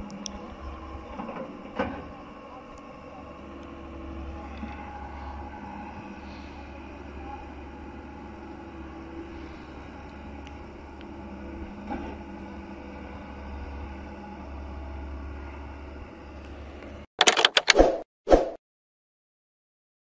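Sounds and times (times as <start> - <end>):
diesel engine running: 0.0 - 17.0.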